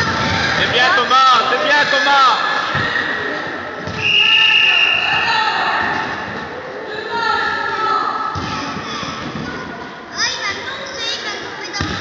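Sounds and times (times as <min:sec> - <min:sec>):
voices of spectators and players: 0:00.0 - 0:12.0
referee's whistle blast: 0:04.0 - 0:05.2.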